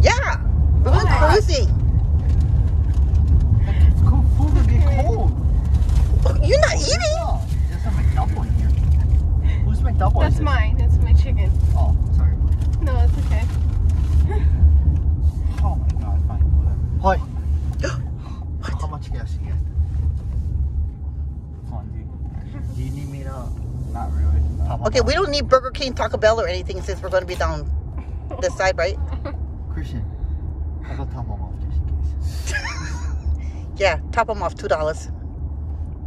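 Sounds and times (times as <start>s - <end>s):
car cabin road rumble: 0.0s - 36.0s.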